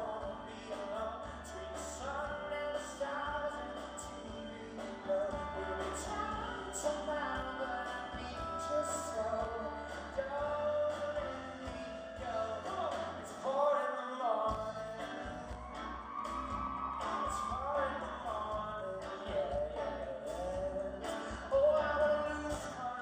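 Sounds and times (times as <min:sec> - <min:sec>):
grand piano: 0:00.0 - 0:13.7
man singing: 0:00.0 - 0:15.7, 0:17.0 - 0:23.0.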